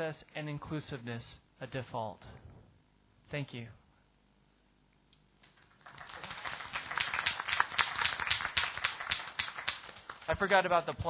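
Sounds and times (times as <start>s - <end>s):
small audience applauding: 5.4s - 11.0s.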